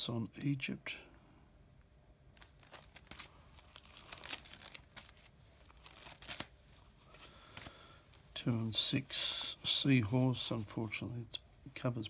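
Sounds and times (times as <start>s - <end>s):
paper envelopes rustling: 2.4s - 8.3s.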